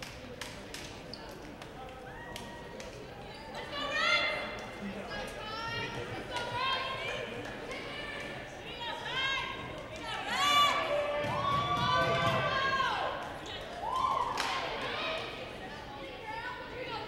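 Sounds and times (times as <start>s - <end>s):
women shouting and cheering: 5.4s - 15.4s.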